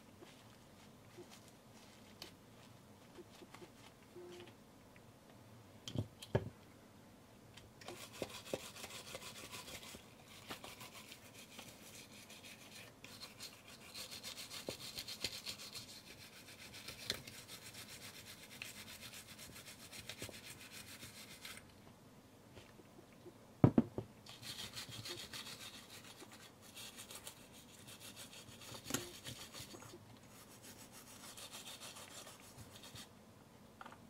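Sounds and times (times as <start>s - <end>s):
toothbrush scrubbing camera: 7.9s - 21.6s, 24.3s - 33.1s
soft knock: 23.6s - 24.1s.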